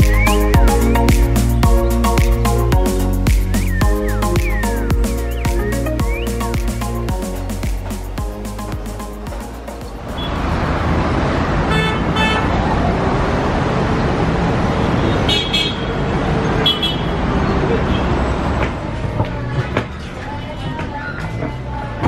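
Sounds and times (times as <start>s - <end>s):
traffic rumble: 0.0s - 22.0s
car horn toots: 11.7s - 12.6s.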